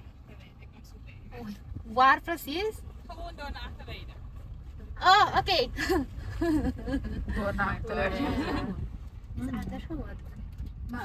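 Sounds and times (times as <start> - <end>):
car engine and tyres rumbling: 0.0 - 11.0
people talking: 0.3 - 4.2, 4.8 - 8.8, 9.4 - 10.3.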